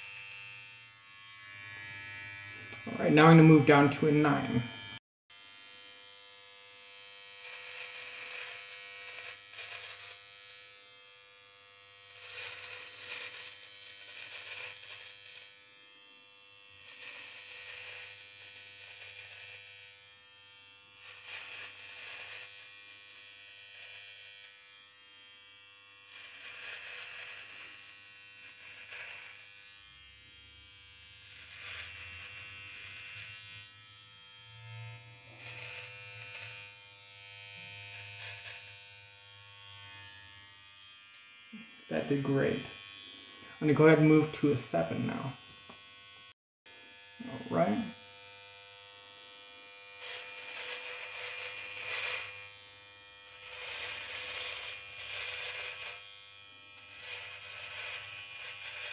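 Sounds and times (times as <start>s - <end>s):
electric hair trimmer buzzing: 0.0s - 58.9s.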